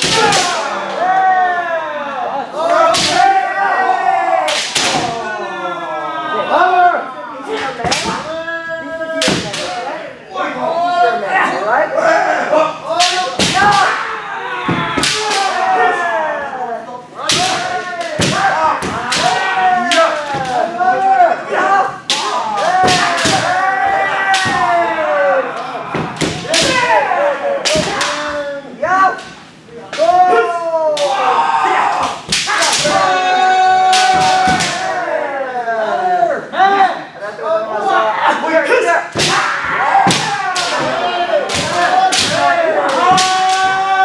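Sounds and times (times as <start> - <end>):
people shouting: 0.0 - 37.0, 37.7 - 44.0
bamboo swords striking armour: 13.0 - 14.0.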